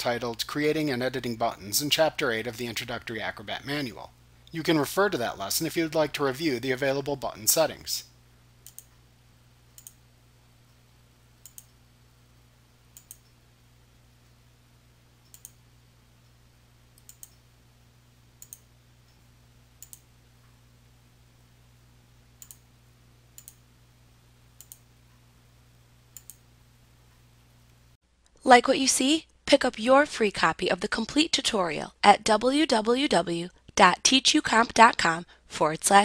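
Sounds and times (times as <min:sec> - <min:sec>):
steady low hum: 0:00.0 - 0:28.0
computer mouse clicking: 0:08.6 - 0:09.0, 0:09.7 - 0:10.0, 0:11.4 - 0:11.8, 0:12.9 - 0:13.4, 0:15.2 - 0:15.6, 0:17.0 - 0:17.4, 0:18.4 - 0:18.7, 0:19.8 - 0:20.1, 0:22.4 - 0:22.6, 0:23.4 - 0:23.6, 0:24.6 - 0:24.9, 0:26.1 - 0:26.4.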